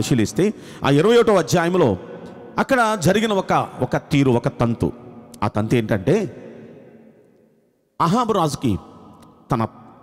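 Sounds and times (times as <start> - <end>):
man speaking into a microphone: 0.0 - 6.6, 8.0 - 10.0.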